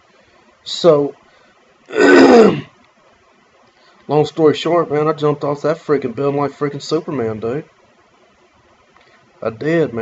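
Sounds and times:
man clearing his throat: 0:01.9 - 0:02.7.

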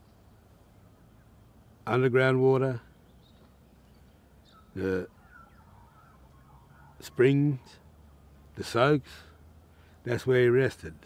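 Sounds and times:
distant bird chirps: 0:00.0 - 0:11.0.

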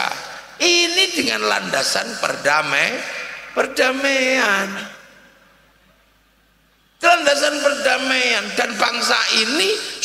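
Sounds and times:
faint hiss: 0:02.2 - 0:10.0.

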